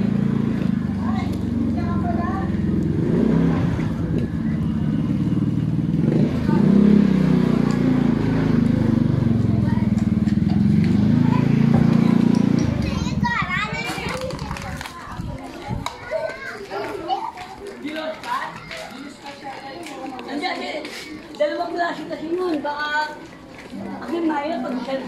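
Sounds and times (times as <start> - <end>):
children's voices: 0.0 - 2.6, 6.2 - 25.0.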